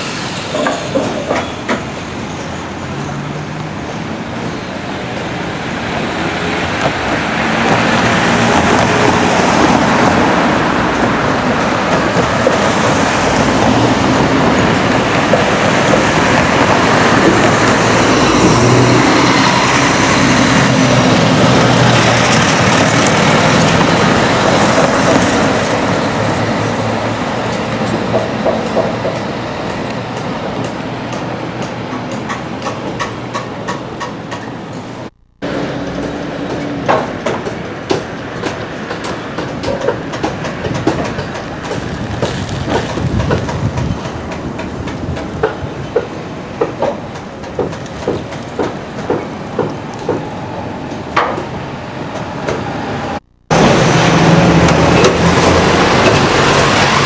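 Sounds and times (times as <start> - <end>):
hammering on timber: 36.0 - 50.2.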